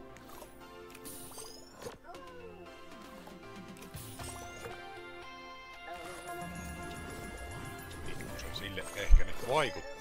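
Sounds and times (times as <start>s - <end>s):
game background music: 0.0s - 10.0s.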